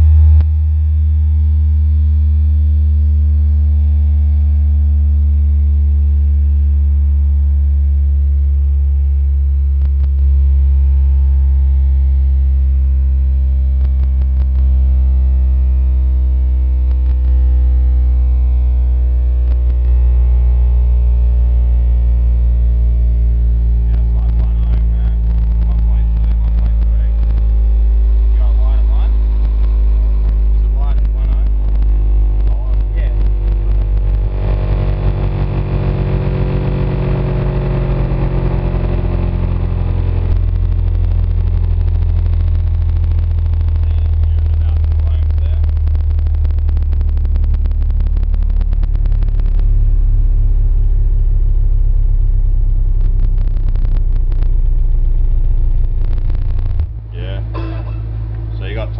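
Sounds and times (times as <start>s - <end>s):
low bass test tone sweeping down: 0.0s - 58.9s
buzzing and rattling: 22.5s - 50.5s, 51.6s - 58.9s.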